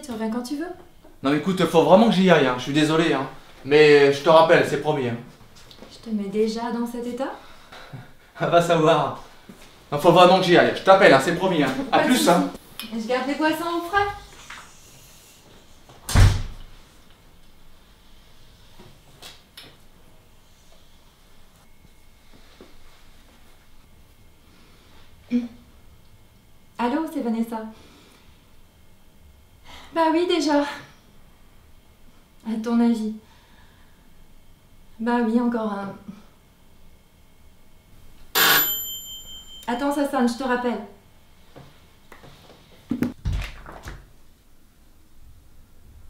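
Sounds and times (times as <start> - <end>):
door shutting thud: 16.1 - 16.6
doorbell ringing: 38.4 - 39.8.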